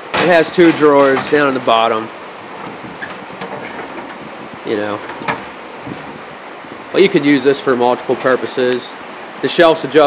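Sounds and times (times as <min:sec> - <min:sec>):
metal drawer rolling on slides: 0:00.0 - 0:06.3.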